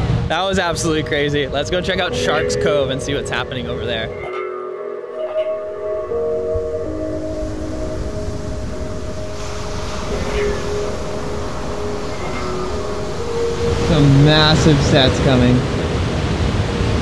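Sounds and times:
background music of held chords: 0.0 - 17.0
surf breaking over rocks: 7.4 - 17.0.

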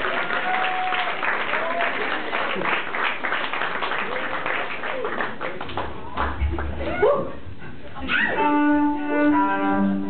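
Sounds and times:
cello bowed note: 8.3 - 10.0.

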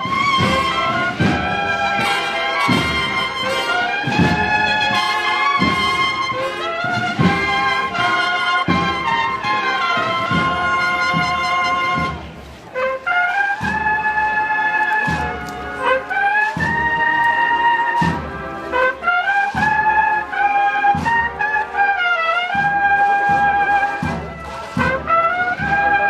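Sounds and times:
brass band playing a march: 0.0 - 26.0.

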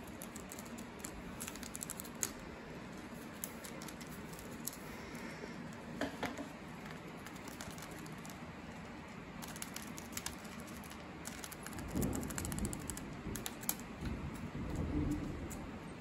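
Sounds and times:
paper crinkling: 0.0 - 5.8, 6.6 - 13.8.

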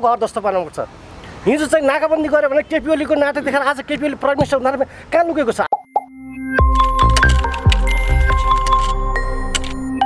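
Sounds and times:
man speaking: 1.5 - 5.8.

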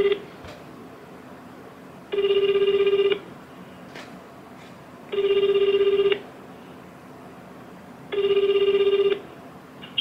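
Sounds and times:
telephone ringback tone: 0.0 - 0.2, 2.1 - 3.2, 5.1 - 6.2, 8.1 - 9.2.

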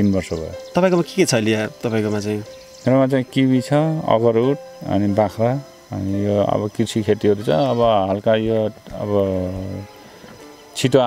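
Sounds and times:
man talking: 0.0 - 9.9, 10.8 - 11.0
insects chirring: 0.0 - 11.0.

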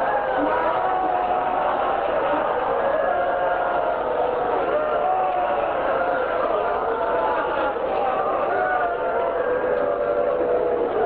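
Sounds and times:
voices wailing and chanting: 0.0 - 11.0.

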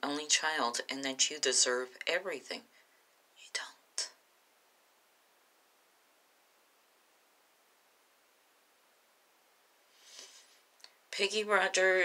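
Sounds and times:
woman whispering: 3.4 - 4.2.

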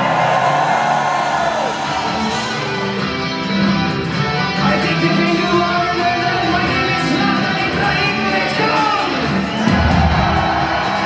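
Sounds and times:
crowd cheering and whooping: 0.0 - 3.2, 9.4 - 11.0
metal band playing: 0.0 - 11.0.

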